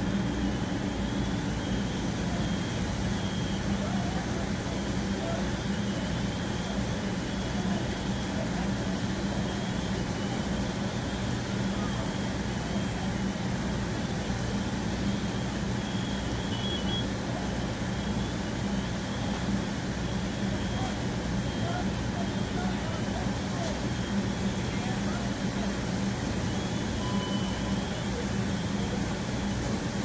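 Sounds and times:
fire engine running: 0.0s - 30.0s.

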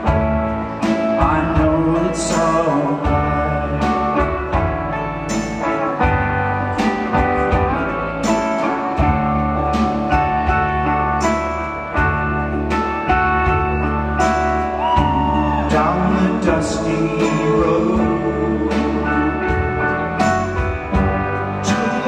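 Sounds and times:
rock band playing: 0.0s - 22.0s.

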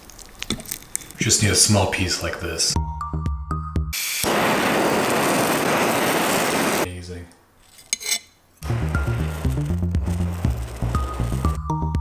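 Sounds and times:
background music: 2.8s - 4.0s, 8.6s - 12.0s
blowtorch flame hissing: 4.0s - 6.9s, 8.6s - 11.6s.

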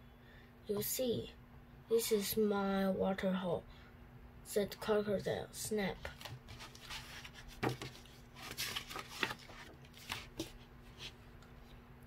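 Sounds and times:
paper pages rustling: 6.1s - 11.1s.

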